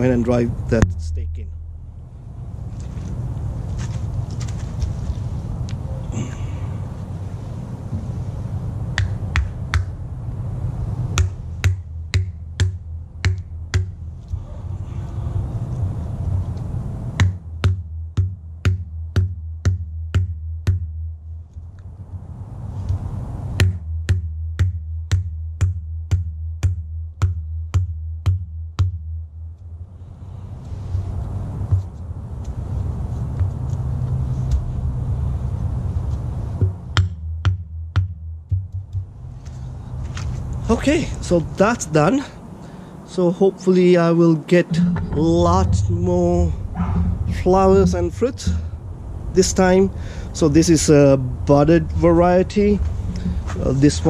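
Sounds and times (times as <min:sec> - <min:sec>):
low rumble: 0:00.0 - 0:19.1, 0:44.5 - 0:54.0.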